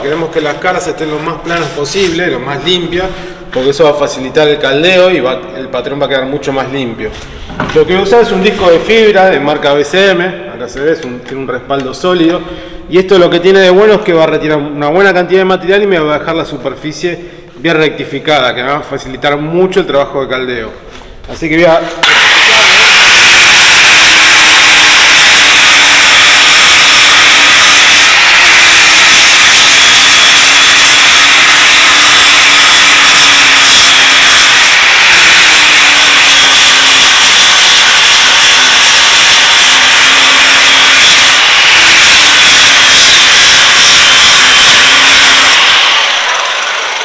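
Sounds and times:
angle grinder grinding steel: 22.0 - 47.0.

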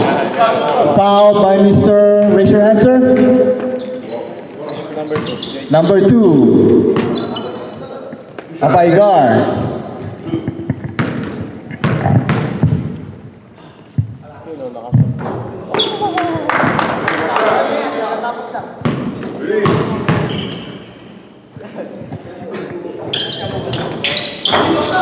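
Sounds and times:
players' voices in a hall: 0.0 - 25.0
basketball bouncing on hardwood: 10.7 - 12.9.

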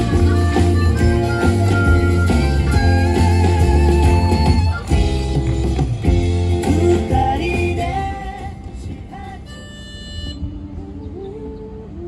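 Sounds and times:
a cappella singing through pa: 6.7 - 9.8.

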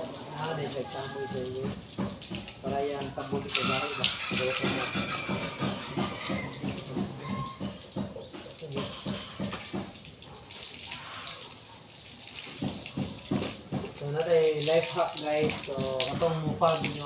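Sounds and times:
water splashing on wet concrete: 0.0 - 17.0.

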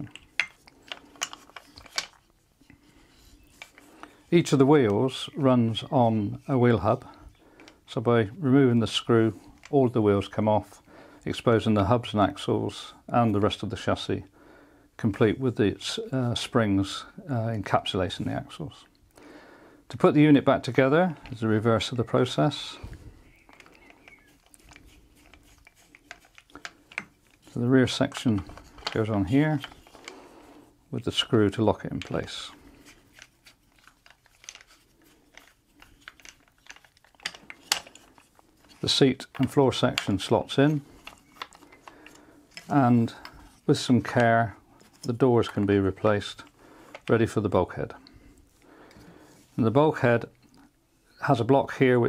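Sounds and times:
wooden toy parts clicking: 0.0 - 7.9, 21.2 - 30.2, 31.1 - 47.4.

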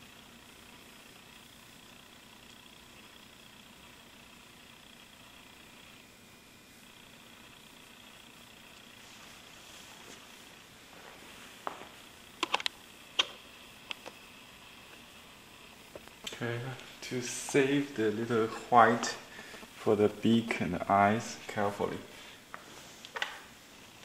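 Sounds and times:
room hiss: 0.0 - 24.0
man talking: 16.3 - 22.1.

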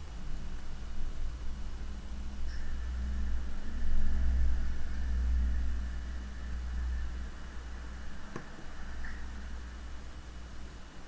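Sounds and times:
faint high whine: 0.0 - 11.0
deep low rumble: 1.1 - 10.4.

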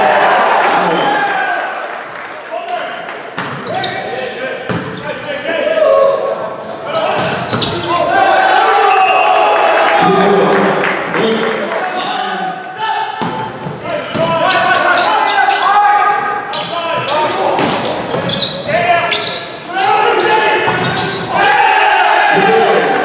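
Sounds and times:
players shouting calls: 0.0 - 23.0.

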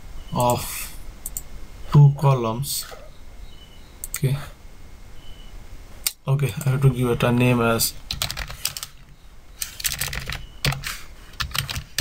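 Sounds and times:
keyboard typing clicks: 1.2 - 1.5, 8.1 - 9.0, 9.6 - 10.8, 11.4 - 12.0.

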